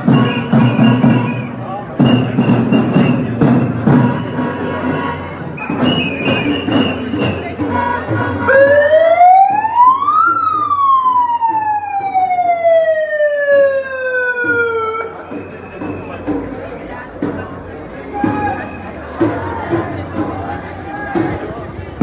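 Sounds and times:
marching crowd: 0.0s - 22.0s
siren wailing: 8.4s - 15.3s.

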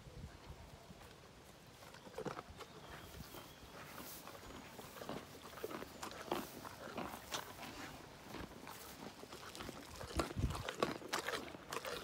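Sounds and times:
footsteps on grass: 1.0s - 11.5s.

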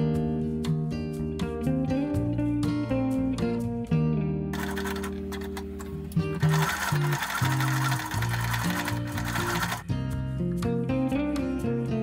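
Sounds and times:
acoustic guitar music: 4.5s - 11.3s
sewing machine stitching: 4.6s - 9.8s.

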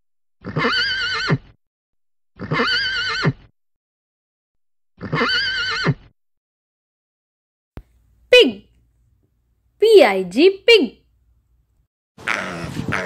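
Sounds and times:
horse whinnying: 0.4s - 1.6s, 2.4s - 3.5s, 5.0s - 6.1s.

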